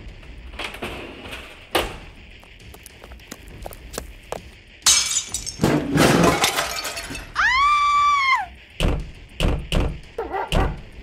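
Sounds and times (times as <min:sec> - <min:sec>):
glass shattering: 0:04.9 - 0:07.4
heavy smash with clattering debris: 0:04.9 - 0:07.4.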